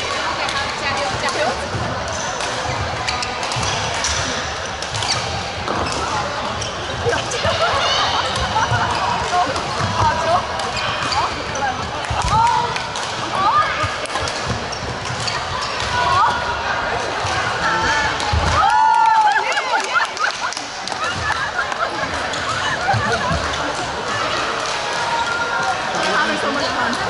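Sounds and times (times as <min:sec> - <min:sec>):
babble of voices: 0:00.0 - 0:27.0
shoes squeaking on court floor: 0:02.1 - 0:07.3, 0:08.2 - 0:12.4, 0:13.8 - 0:15.9, 0:21.1 - 0:24.0
rackets striking shuttlecock: 0:02.3 - 0:06.2, 0:11.8 - 0:16.0.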